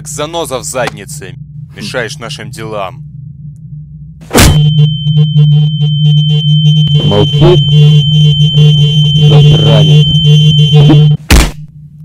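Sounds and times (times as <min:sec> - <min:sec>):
electronic low drone: 0:00.0 - 0:12.0
sharp heavy hit: 0:04.2 - 0:04.9
thin high tone: 0:04.6 - 0:11.2.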